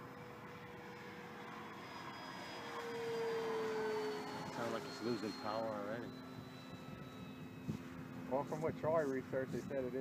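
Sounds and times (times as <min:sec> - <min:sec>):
model plane electric motor whine: 0:00.0 - 0:10.0.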